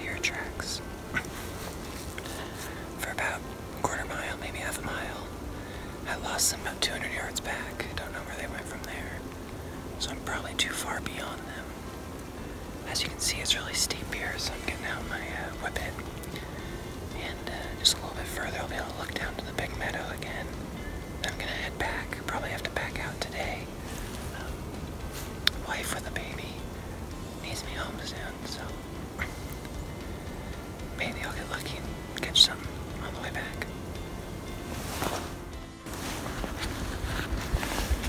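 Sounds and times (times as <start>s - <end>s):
man whispering: 0.0s - 5.4s, 6.0s - 9.2s, 10.0s - 11.8s, 12.9s - 16.4s, 17.1s - 20.6s, 21.2s - 24.6s, 25.4s - 26.7s, 27.4s - 29.6s, 31.0s - 33.7s.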